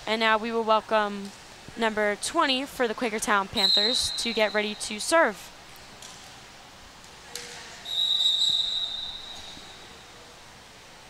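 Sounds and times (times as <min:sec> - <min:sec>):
referee whistle blast: 0:03.6 - 0:04.7, 0:07.8 - 0:09.9.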